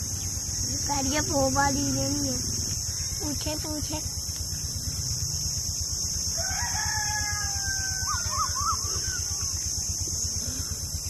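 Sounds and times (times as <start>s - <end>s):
high insect buzz: 0.0s - 11.0s
rooster crowing: 6.2s - 9.7s.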